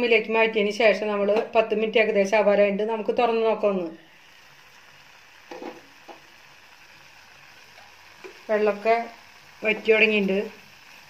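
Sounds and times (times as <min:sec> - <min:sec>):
faint sizzle in a pot: 0:00.0 - 0:11.0.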